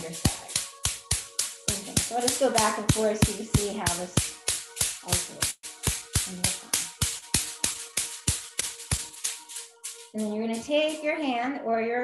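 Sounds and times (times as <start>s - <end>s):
wooden stick tapping on arm: 0.0s - 11.0s.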